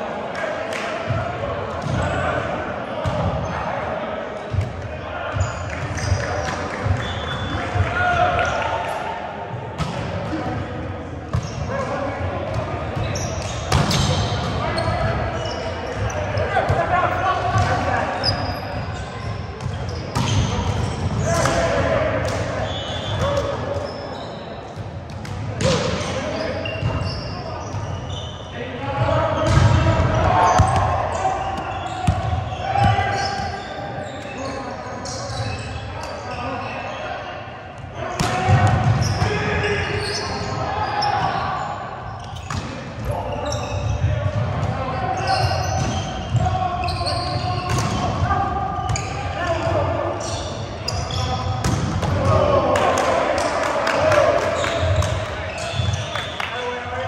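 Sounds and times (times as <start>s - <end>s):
players' voices: 0.0s - 57.0s
sneaker squeaks on floor: 5.3s - 7.9s, 11.3s - 11.8s, 12.5s - 16.8s, 17.6s - 21.5s, 22.6s - 28.6s, 29.4s - 37.2s, 38.8s - 48.1s, 48.8s - 49.6s, 50.2s - 52.1s, 54.6s - 56.6s
volleyball hits and thumps: 9.8s - 10.7s, 11.3s - 15.1s, 29.4s - 31.0s, 38.2s - 39.4s, 47.6s - 48.2s, 51.6s - 53.5s.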